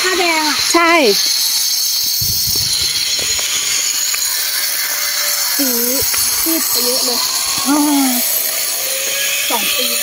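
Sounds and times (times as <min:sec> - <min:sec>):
high-pitched hiss: 0:00.0 - 0:10.0
low bumps: 0:02.2 - 0:04.9, 0:05.9 - 0:08.6.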